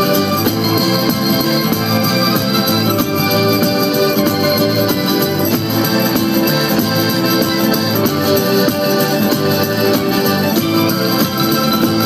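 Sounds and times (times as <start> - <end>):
bass guitar: 0.0 - 12.0
folk band playing dance music: 0.0 - 12.0
frame drums: 0.0 - 12.0.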